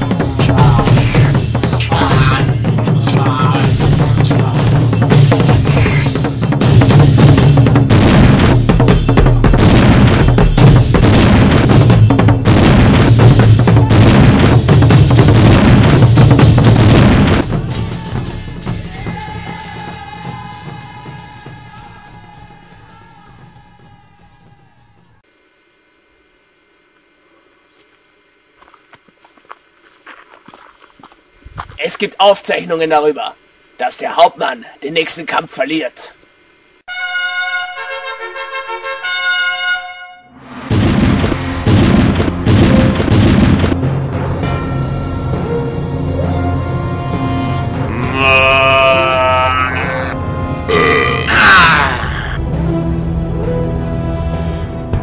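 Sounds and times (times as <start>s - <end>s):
background music: 0.0s - 25.2s, 36.9s - 55.0s
man speaking: 0.4s - 4.8s, 31.8s - 36.2s
footsteps through dry undergrowth: 27.5s - 31.8s
person crying out: 47.9s - 52.4s.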